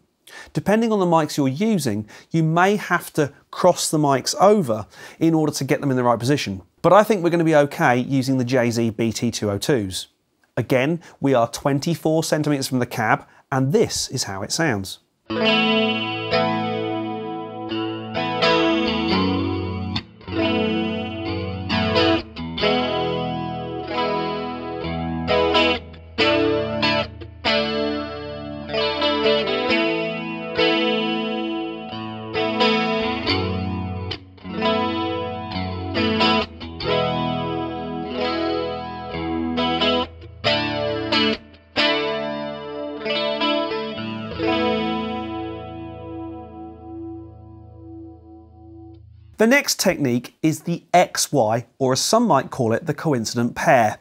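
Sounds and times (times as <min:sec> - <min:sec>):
electric guitar with chorus effect: 0:15.3 - 0:49.4.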